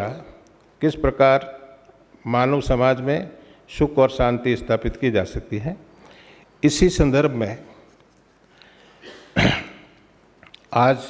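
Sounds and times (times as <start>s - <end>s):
man speaking into a microphone: 0.0s - 1.6s, 2.2s - 5.8s, 6.6s - 7.8s, 10.7s - 11.0s
man clearing throat: 9.0s - 10.0s.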